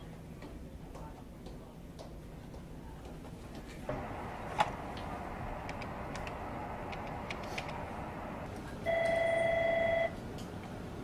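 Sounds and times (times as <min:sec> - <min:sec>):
telephone ringing: 0:08.9 - 0:10.2.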